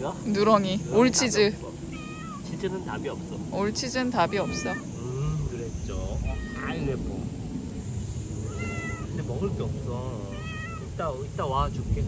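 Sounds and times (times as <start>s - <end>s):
cat meowing: 1.9s - 2.6s, 4.0s - 5.0s, 6.1s - 7.0s, 8.3s - 9.2s, 10.2s - 11.0s.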